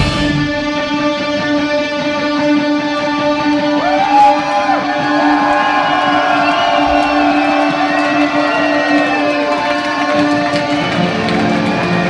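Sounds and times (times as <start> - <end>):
live band electric guitars: 0.0 - 12.0.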